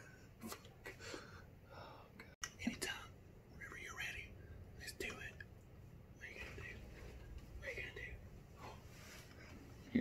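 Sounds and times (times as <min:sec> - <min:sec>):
faint whispering voice: 0:01.8 - 0:05.5, 0:06.1 - 0:09.0.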